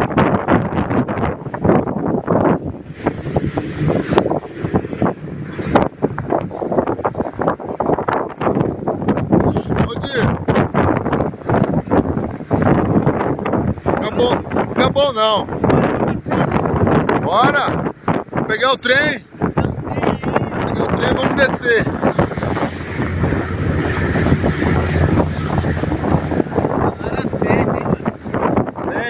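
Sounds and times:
wind buffeting microphone: 0.0s - 29.0s
truck engine drone: 21.6s - 28.5s.

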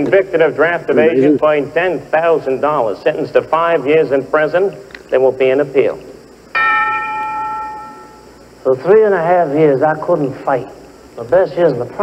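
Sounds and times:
bell-like chime: 6.6s - 8.3s.

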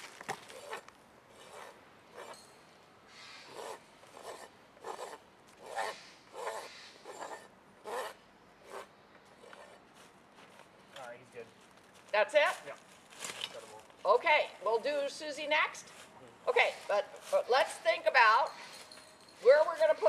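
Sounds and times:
rasp filing a hoof: 0.5s - 2.4s, 3.4s - 9.8s.

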